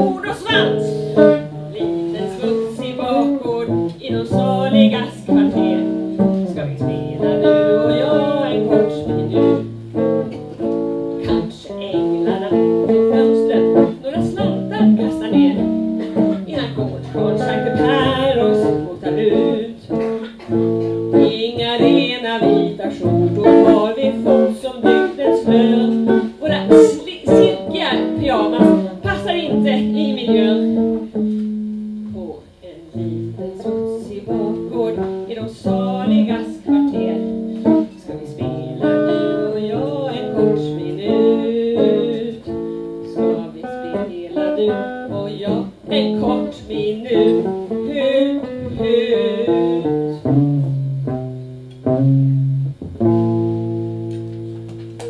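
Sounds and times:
woman singing: 0.0s - 10.3s, 11.1s - 31.1s, 32.0s - 50.3s
guitar playing: 0.0s - 55.0s.

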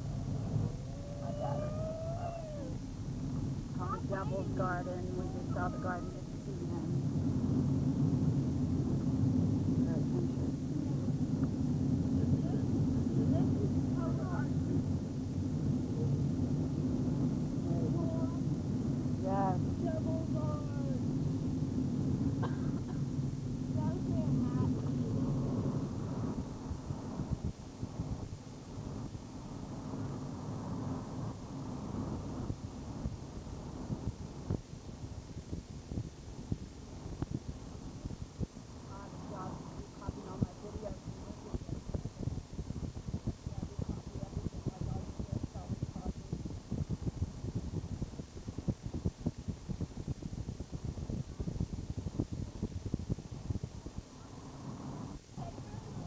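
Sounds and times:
faint voices talking: 0.8s - 2.9s, 3.7s - 7.1s, 38.8s - 46.7s, 54.0s - 56.0s
vehicle engine and road noise: 2.8s - 35.2s.

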